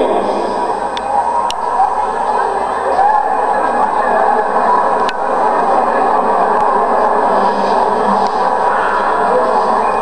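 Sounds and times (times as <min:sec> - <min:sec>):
crowd talking in a hall: 0:00.0 - 0:10.0.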